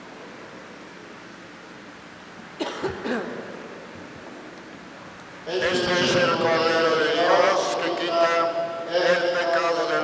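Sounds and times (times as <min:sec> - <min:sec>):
person coughing: 0:02.6 - 0:03.4.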